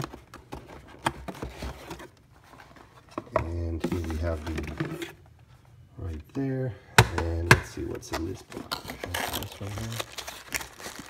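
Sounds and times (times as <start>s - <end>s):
cardboard boxes being handled: 0.0s - 5.2s.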